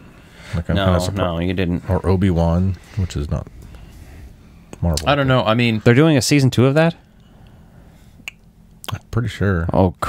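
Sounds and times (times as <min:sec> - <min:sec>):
person speaking: 0:04.8 - 0:07.0.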